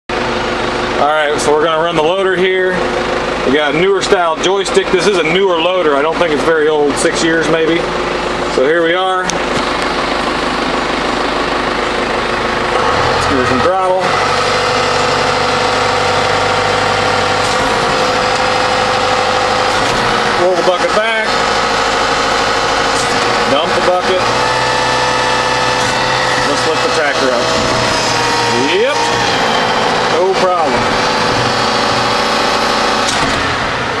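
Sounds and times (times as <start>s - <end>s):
diesel tractor engine idling: 0.1s - 34.0s
hydraulics whining: 0.1s - 34.0s.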